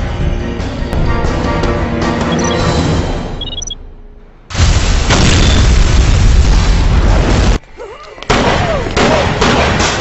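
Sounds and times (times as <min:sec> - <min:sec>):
deep rumbling explosion: 0:04.5 - 0:07.6.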